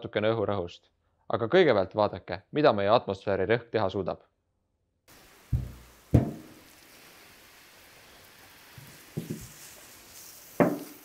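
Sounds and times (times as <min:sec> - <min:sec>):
hose spray hissing on metal: 0:05.1 - 0:11.0
metal barrel bang: 0:05.6 - 0:06.6.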